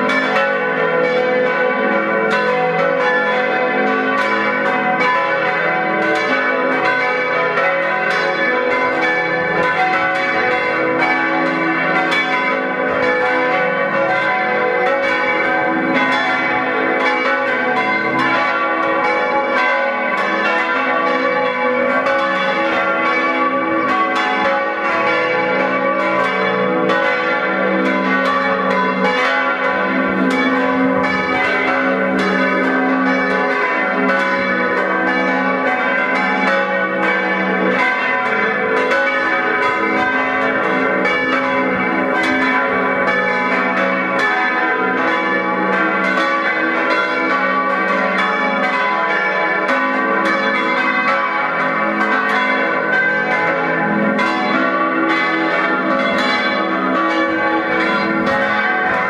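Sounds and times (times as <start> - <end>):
church bells ringing together: 0.0 - 59.0.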